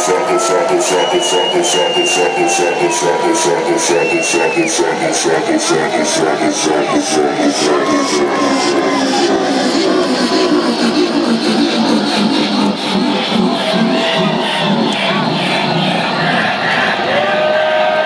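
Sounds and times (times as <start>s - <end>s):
crowd cheering: 0.0s - 18.0s
electronic dance music: 0.0s - 18.0s.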